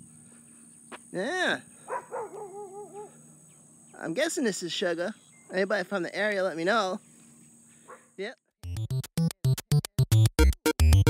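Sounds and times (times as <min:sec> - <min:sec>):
dog whining: 0:01.9 - 0:03.1.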